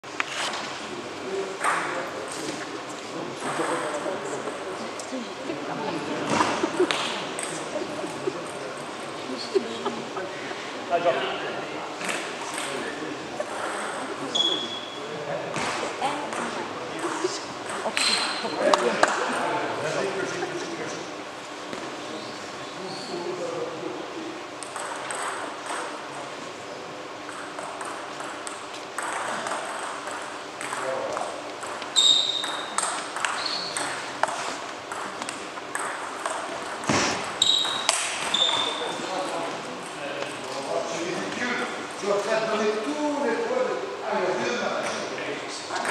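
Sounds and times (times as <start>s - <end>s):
chatter of voices: 0.8s - 24.7s
short high squeaks: 14.3s - 15.0s, 32.0s - 34.0s, 37.4s - 39.0s
table tennis ball clicking: 31.6s - 34.3s.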